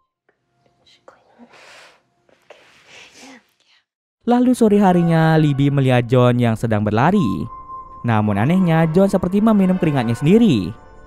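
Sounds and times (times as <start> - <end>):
woman whispering: 0.8 - 3.9.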